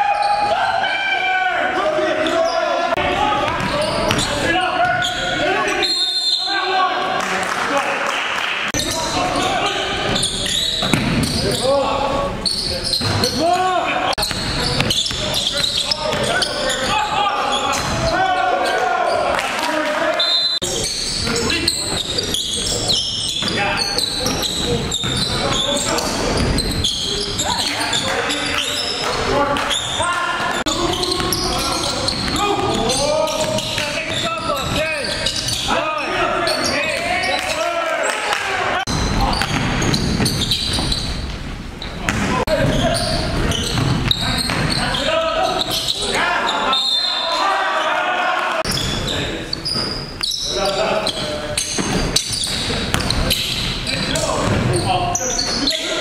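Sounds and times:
players' voices calling out: 0.0s - 7.7s, 8.7s - 41.1s, 41.8s - 56.0s.

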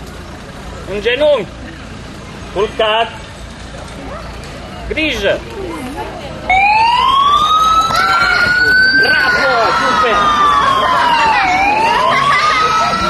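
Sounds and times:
emergency siren wailing: 6.5s - 13.0s.

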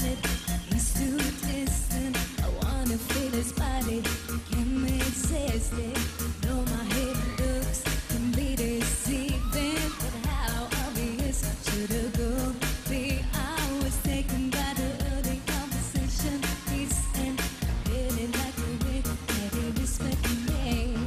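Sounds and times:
band playing pop music: 0.0s - 21.0s
steady drum beat: 0.0s - 21.0s
woman singing: 0.0s - 21.0s.

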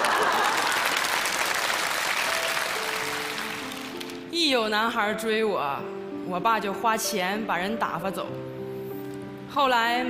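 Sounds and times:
audience applauding: 0.0s - 4.3s
soft background music: 1.9s - 10.0s.

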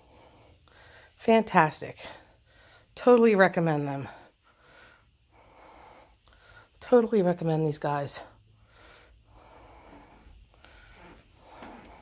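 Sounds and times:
soft breathing: 0.0s - 1.3s, 2.0s - 3.0s, 3.9s - 6.9s, 8.1s - 12.0s.

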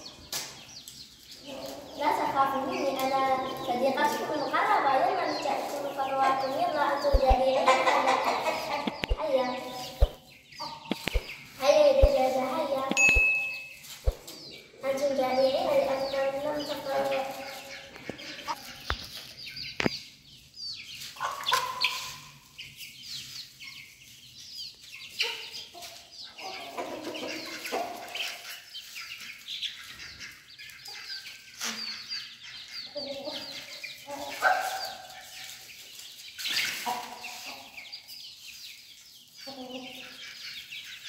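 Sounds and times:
chickens clucking: 0.0s - 41.0s
sharp click: 8.8s - 9.2s, 10.9s - 11.3s, 12.9s - 14.2s.

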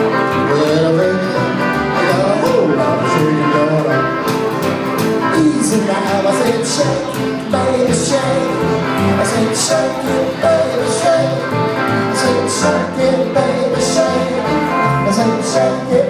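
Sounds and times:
live rock and roll band: 0.0s - 16.0s.

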